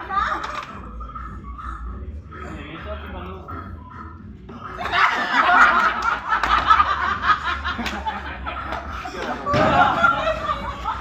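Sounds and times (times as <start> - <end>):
group laughing and shouting: 0.0 - 11.0.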